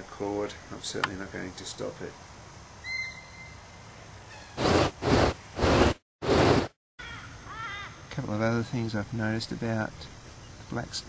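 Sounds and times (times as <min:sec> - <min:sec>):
bird cawing harshly: 0:07.0 - 0:08.0.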